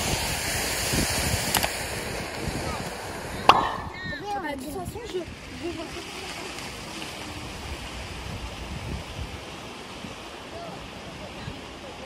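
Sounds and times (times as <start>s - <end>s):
steady outdoor noise: 0.0s - 12.0s
wind buffeting microphone: 0.0s - 12.0s.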